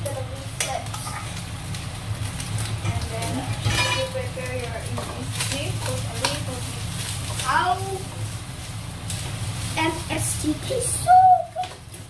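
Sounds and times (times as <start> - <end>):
rice sizzling in hot oil: 0.0 - 12.0
spatula scraping a pan: 3.5 - 4.2.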